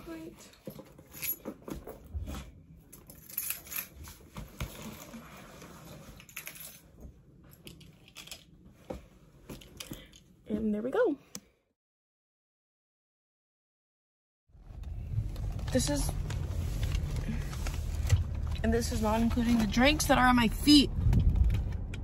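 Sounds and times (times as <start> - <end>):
backpack rustling and crinkling: 3.6 - 6.5, 14.8 - 20.1.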